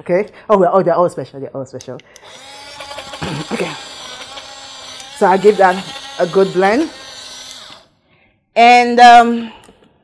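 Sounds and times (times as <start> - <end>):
blender grinding oats: 2.2 - 7.9.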